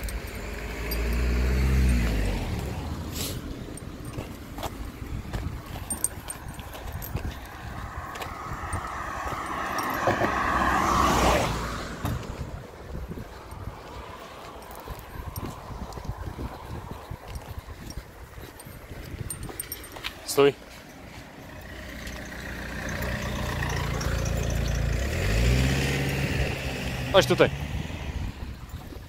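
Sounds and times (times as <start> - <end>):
car passing: 0.0 - 28.9
footsteps on paving: 1.9 - 10.7, 12.0 - 22.2.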